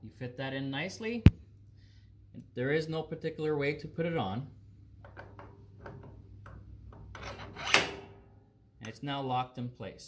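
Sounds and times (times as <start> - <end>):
metal part scraping slide: 7.2 - 8.1.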